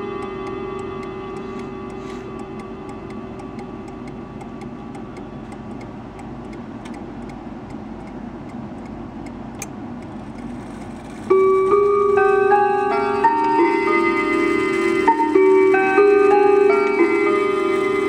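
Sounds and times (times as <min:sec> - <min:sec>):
clock chime ringing: 0:00.0 - 0:04.4, 0:11.3 - 0:18.0
clock ticking: 0:00.0 - 0:10.5.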